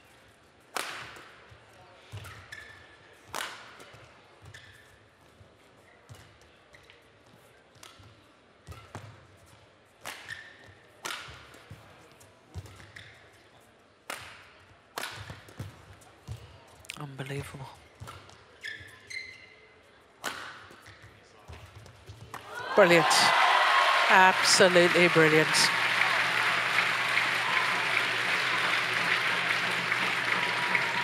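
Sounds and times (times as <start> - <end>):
court shoes squeaking: 4.4 - 5.0, 18.0 - 19.7, 25.3 - 31.0.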